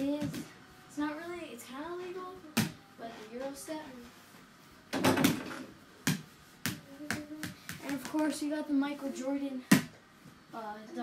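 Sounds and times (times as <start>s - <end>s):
basketball bouncing on floor: 5.0s - 8.2s.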